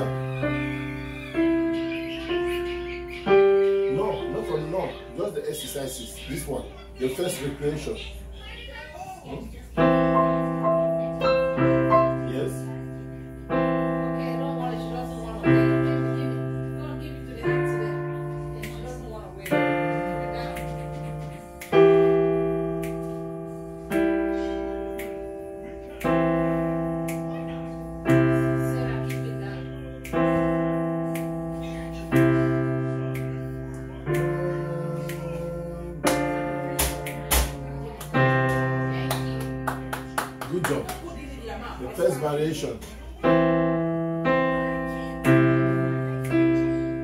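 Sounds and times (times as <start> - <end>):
digital piano chords: 0.0 - 8.6, 9.4 - 47.0.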